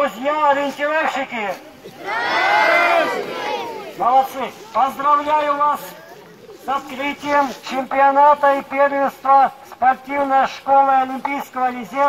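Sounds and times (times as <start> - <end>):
crowd shouting in unison: 2.0 - 4.0.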